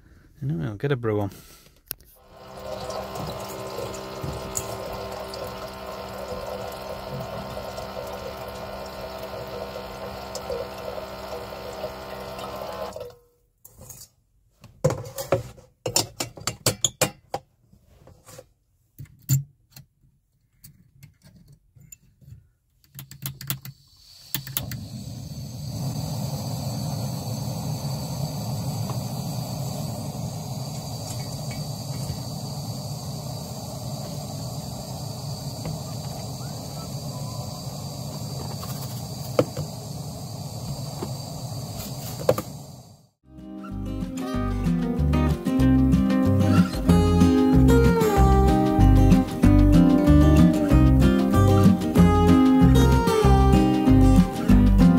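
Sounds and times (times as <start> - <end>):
gas burner hissing: 2.2 - 13.0, 23.7 - 43.2, 46.3 - 54.9
water pump running: 2.2 - 13.1, 24.2 - 43.0, 46.3 - 54.8
water filling kettle: 2.2 - 13.2, 23.8 - 43.0
clicks and knocks of handling: 19.0 - 23.7.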